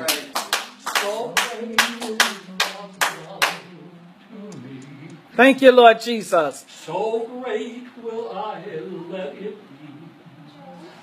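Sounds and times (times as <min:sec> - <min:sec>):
hand clapping in a steady beat: 0:00.0 - 0:03.7.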